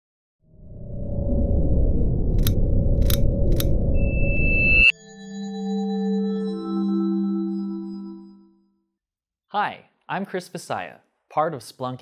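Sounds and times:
low rumbling drone: 0.4 - 4.9
sharp clicks: 2.4 - 3.8
thin high tone: 3.8 - 8.4
ringing chime tones: 4.0 - 8.8.

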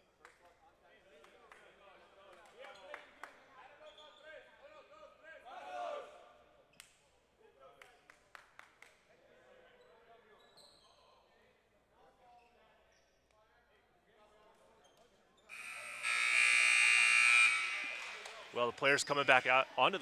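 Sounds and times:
electronic buzzer: 15.5 - 18.5.

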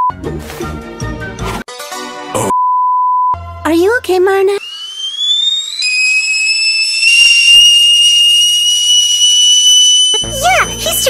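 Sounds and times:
high-pitched cartoon whistle: 4.6 - 11.0.

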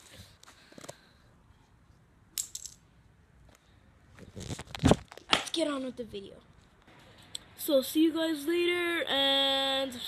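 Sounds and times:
toy car clattering on concrete: 2.4 - 2.9.

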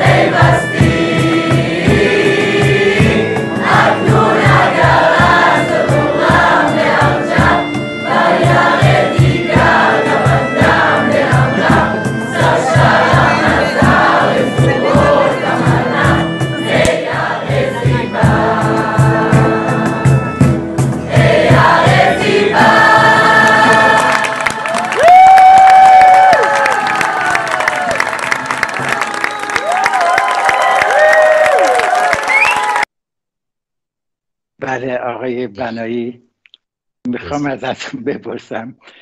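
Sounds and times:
choir singing over a beat: 0.0 - 25.2
audience cheering: 23.5 - 32.9
shrill whistles: 28.9 - 30.6, 32.1 - 32.9.

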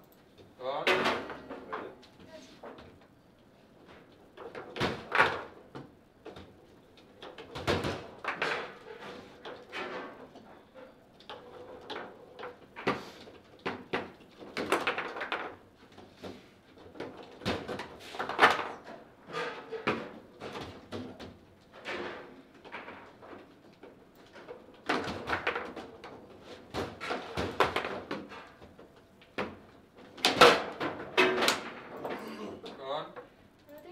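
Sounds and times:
table football knocks and clacks: 11.3 - 18.7.

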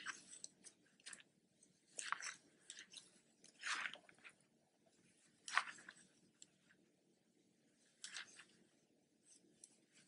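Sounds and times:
yarn rustling on crochet hook: 0.0 - 6.8, 7.7 - 10.0.

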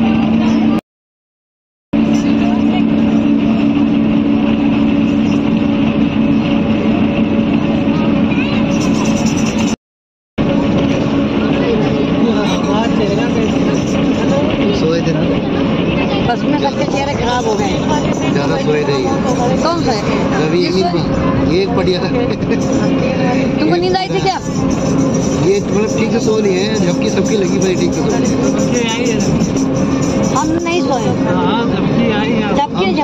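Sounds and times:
bus engine and road noise: 0.0 - 0.8, 1.9 - 9.8, 10.4 - 33.0
passengers talking: 0.0 - 0.8, 2.0 - 9.8, 10.4 - 33.0.

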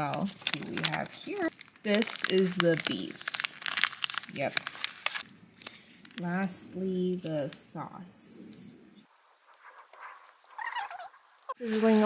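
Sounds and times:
foil sachet crinkling: 0.0 - 7.6, 9.1 - 11.7.

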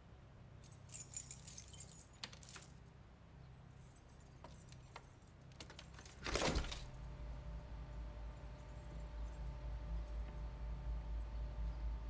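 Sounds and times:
keys jingling: 0.6 - 2.8, 3.8 - 7.0.

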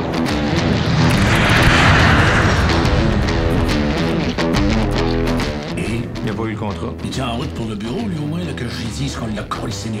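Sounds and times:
jet airliner flying overhead: 0.1 - 4.8
background music: 3.1 - 10.0.

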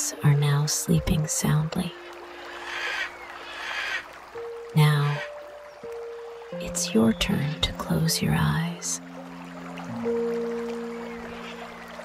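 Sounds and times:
flowing water: 0.0 - 12.0
soft low background music: 0.0 - 12.0.

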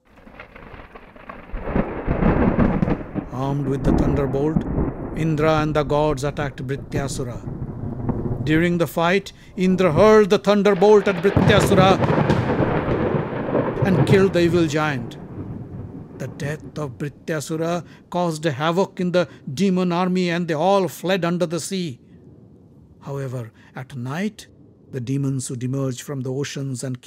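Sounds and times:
deep thunder rumble: 0.0 - 18.2, 24.4 - 25.7.

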